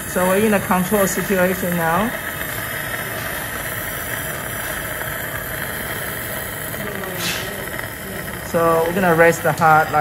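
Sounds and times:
medical equipment hum and hiss: 0.0s - 10.0s.

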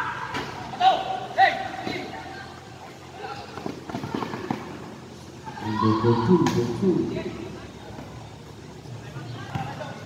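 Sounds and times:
voices calling out: 0.0s - 10.0s.

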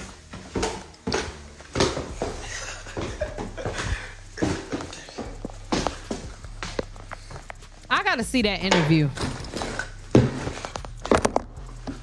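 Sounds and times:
steady low hum: 0.2s - 12.0s
person speaking: 7.8s - 9.3s.

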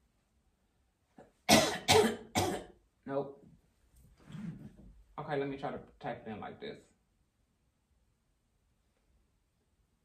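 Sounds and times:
woman coughing: 1.5s - 2.8s.

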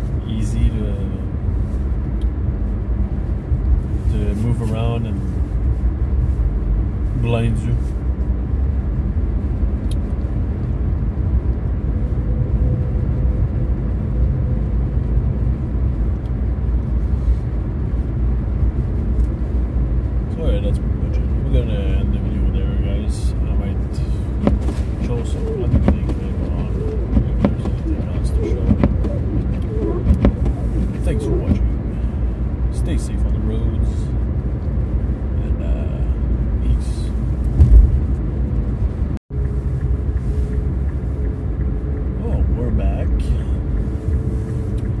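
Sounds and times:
car engine running: 0.0s - 45.0s
tyre and road noise: 0.0s - 45.0s.

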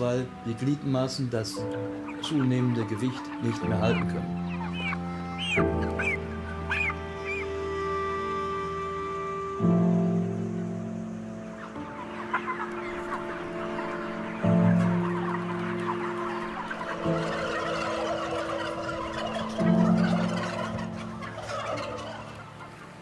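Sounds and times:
chickens and turkeys clucking: 0.0s - 9.2s, 10.1s - 23.0s
slow music of held notes: 0.0s - 23.0s.

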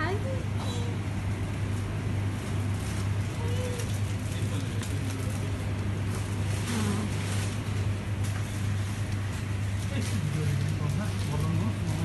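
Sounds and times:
faint store noise: 0.0s - 12.0s
steady low hum: 0.0s - 12.0s.

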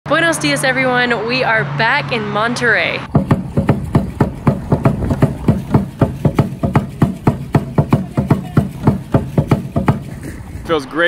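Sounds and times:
drum beaten with sticks: 3.1s - 10.4s.

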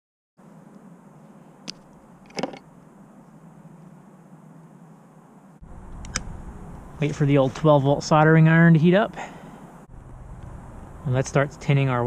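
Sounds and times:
steady low hum: 0.4s - 12.0s
low background rumbling: 5.2s - 12.0s.

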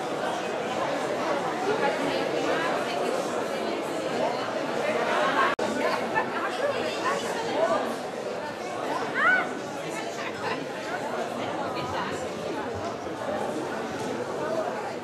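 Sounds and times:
crowd chatter in a hall: 0.0s - 15.0s.

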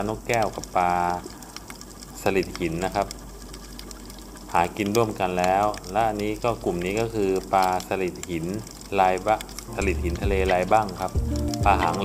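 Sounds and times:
man narrating: 0.0s - 1.3s, 2.2s - 3.1s, 4.5s - 12.0s
low hum: 0.0s - 12.0s
underwater crackling and ticking: 0.0s - 12.0s.

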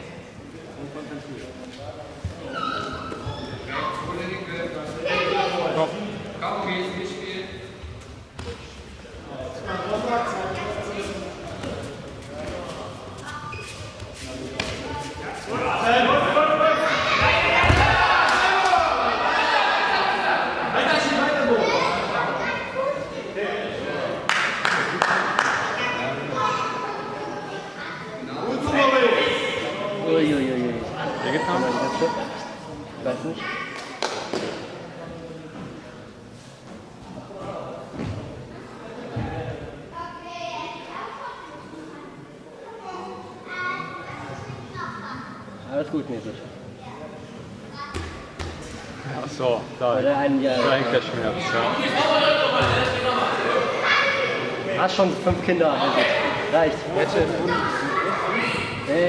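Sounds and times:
thud echoing in sports hall: 17.1s - 18.4s, 47.8s - 48.8s, 52.5s - 53.1s.

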